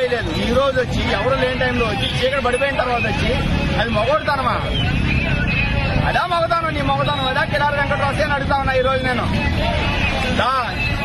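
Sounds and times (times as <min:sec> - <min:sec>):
man talking: 0:00.0 - 0:04.7
motorcycle and scooter engines passing: 0:00.0 - 0:11.0.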